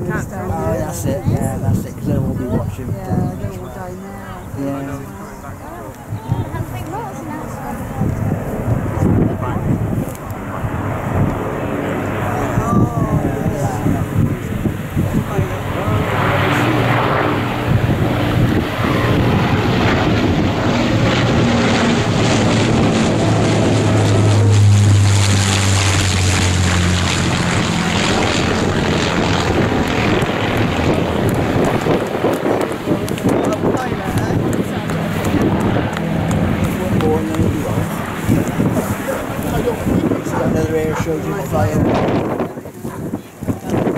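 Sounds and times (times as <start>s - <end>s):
propeller aircraft flying past: 0.0s - 43.9s.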